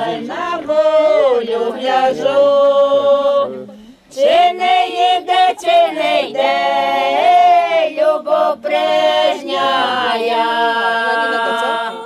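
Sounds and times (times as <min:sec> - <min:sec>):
women singing unaccompanied: 0:00.0 - 0:12.0.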